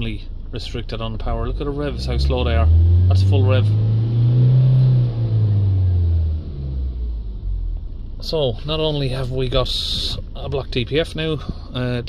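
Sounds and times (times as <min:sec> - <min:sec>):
diesel engine revving: 0:01.2 - 0:08.0.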